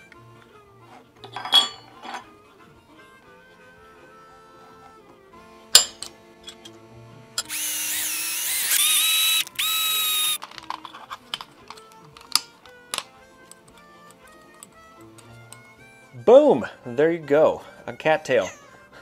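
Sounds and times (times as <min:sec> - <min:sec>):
soft background music: 0:00.0 - 0:19.0
cordless drill whining: 0:07.4 - 0:10.4
metal parts clicking: 0:08.6 - 0:15.6.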